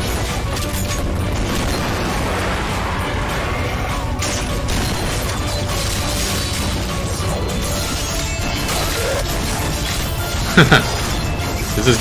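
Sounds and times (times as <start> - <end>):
metallic weapon and impact effects: 0.0 - 11.7
action trailer music: 0.0 - 12.0
gunfire: 0.0 - 12.0.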